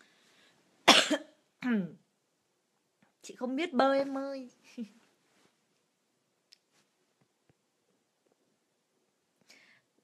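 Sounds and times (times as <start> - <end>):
woman coughing: 0.9 - 1.4.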